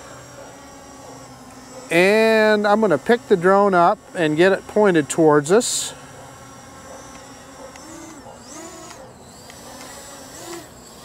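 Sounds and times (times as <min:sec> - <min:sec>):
drone motors humming: 0:00.0 - 0:11.0.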